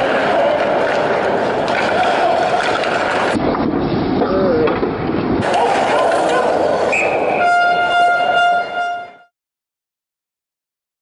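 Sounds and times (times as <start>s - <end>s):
crowd noise: 0.0s - 9.3s
high whistle: 6.9s - 9.3s
goal horn blast: 7.3s - 9.3s.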